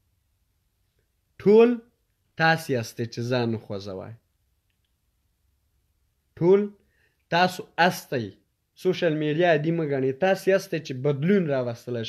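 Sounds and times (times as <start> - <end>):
man speaking: 1.4 - 4.3, 6.3 - 12.0
faint clicks: 4.6 - 5.0.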